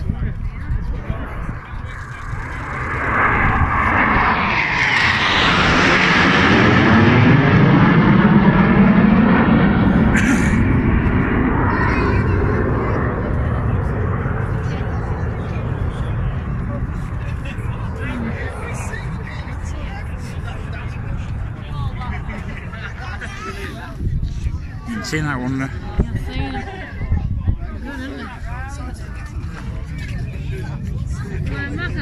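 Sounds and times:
jets flying past: 0:00.0 - 0:27.8.

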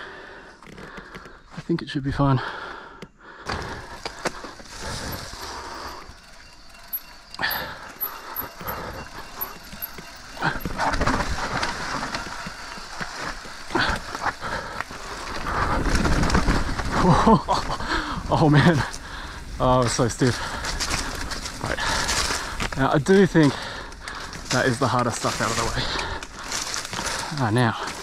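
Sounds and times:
bike rattling over bumps: 0:03.4 - 0:28.0
bike tyres rolling over dirt: 0:03.4 - 0:28.0.

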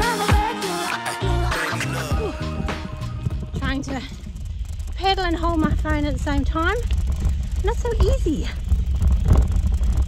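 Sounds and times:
wind rumble on microphone: 0:02.2 - 0:10.0.

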